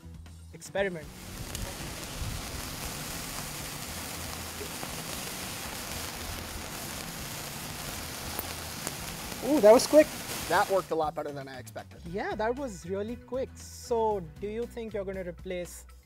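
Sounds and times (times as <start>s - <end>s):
sparkler crackling fizz: 1.0s - 11.1s.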